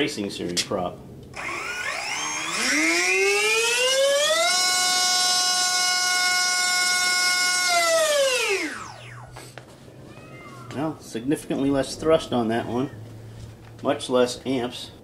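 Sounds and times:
electric motor propeller whine: 1.3s - 9.5s.

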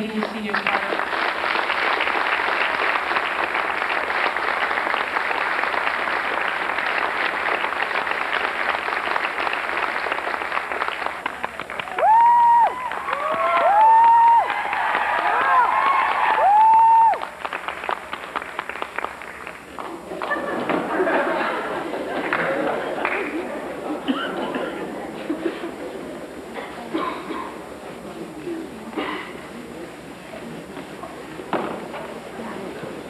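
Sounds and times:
audience applauding: 0.0s - 24.6s
high cheering whoops: 11.8s - 17.4s.

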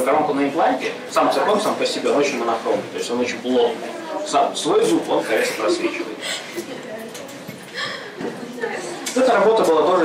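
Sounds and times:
faint man's voice: 0.0s - 6.3s.

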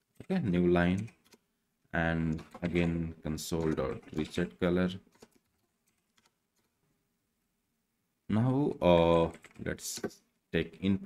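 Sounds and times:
computer keyboard keystrokes: 0.9s - 1.4s, 2.3s - 4.4s, 5.1s - 6.7s.

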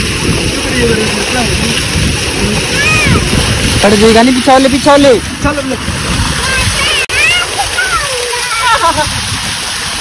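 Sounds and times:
water gushing from a pipe: 0.0s - 10.0s
water splashing: 0.0s - 10.0s.

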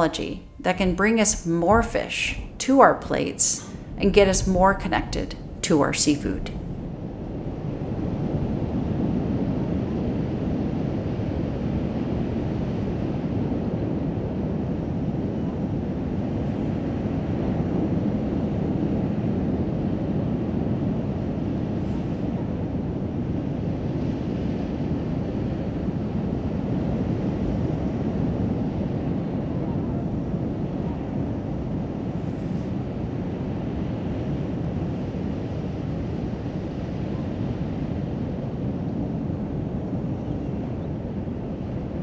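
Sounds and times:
low rumbling noise: 0.0s - 14.8s.

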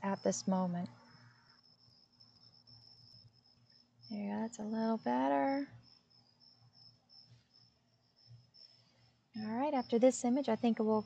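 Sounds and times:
faint crickets chirping: 0.0s - 11.0s.

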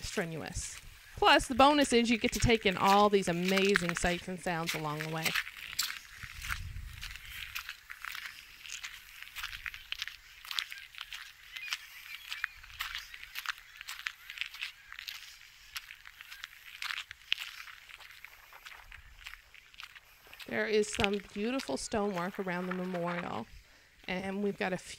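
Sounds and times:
footsteps crunching on gravel: 0.0s - 24.8s.

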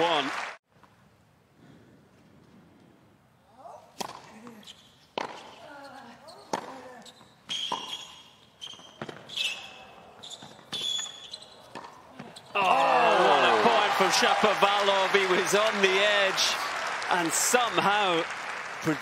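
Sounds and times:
tennis ball hits: 4.0s - 4.4s
crowd cheering and shouting: 12.6s - 19.0s.

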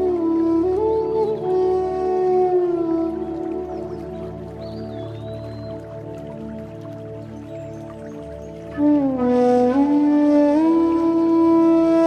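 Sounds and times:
bamboo flute playing: 0.0s - 12.0s.

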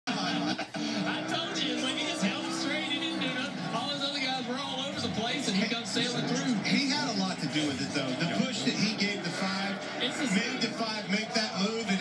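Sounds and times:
television music with voices: 0.0s - 12.0s.

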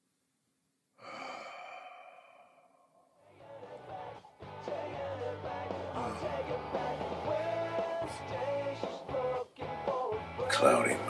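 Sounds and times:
man sighing: 1.0s - 3.1s.

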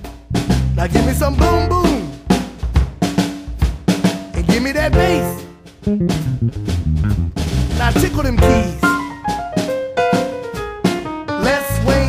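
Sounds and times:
bass drum strokes: 4.8s - 8.9s
snare drum strokes: 5.9s - 8.1s.

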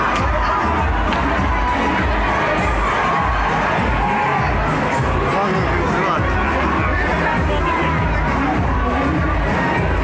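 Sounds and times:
crowd shouting and cheering: 0.0s - 10.0s
music playing: 0.0s - 10.0s.

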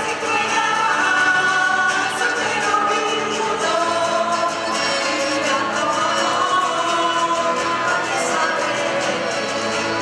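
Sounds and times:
folk dance music: 0.0s - 10.0s
voices singing together: 0.0s - 10.0s.

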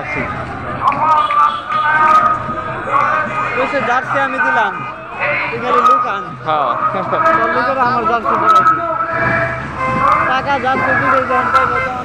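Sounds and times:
crowd chanting slogans: 0.0s - 12.0s.

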